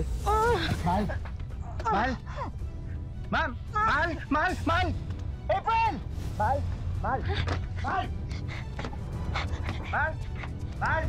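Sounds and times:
dramatic music with low drone: 0:00.0 - 0:11.0.

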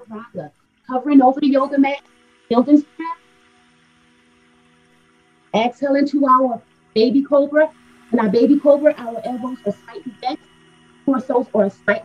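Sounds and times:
faint music with soft held tones: 0:00.0 - 0:12.0.

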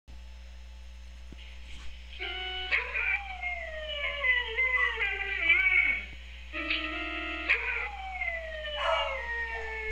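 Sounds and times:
electronic keyboard tones: 0:02.2 - 0:09.9
dog howling: 0:02.7 - 0:06.1, 0:07.5 - 0:09.9.

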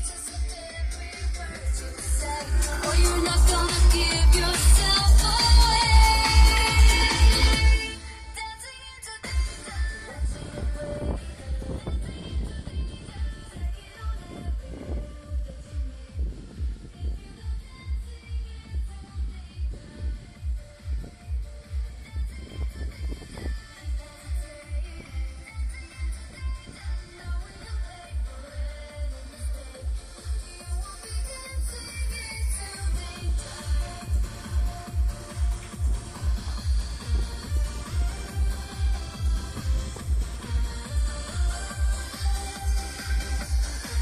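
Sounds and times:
heavy bass beat: 0:00.0 - 0:08.3, 0:09.2 - 0:44.0
electronic dance music from car stereo: 0:00.0 - 0:44.0.

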